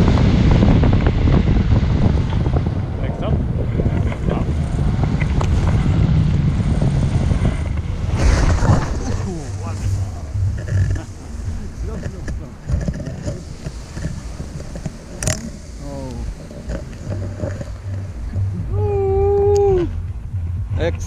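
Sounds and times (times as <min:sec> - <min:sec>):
wind buffeting microphone: 0:00.0 - 0:21.0
person calling long steady note: 0:14.2 - 0:20.8.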